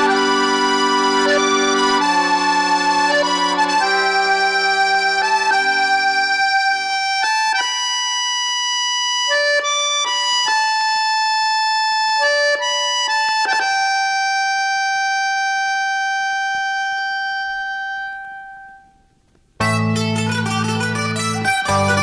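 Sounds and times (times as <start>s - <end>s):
accordion slow melody: 0.0s - 22.0s.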